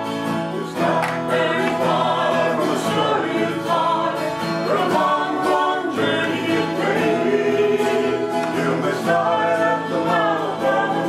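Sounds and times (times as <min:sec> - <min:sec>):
acoustic guitar: 0:00.0 - 0:11.0
man and woman singing: 0:00.5 - 0:11.0.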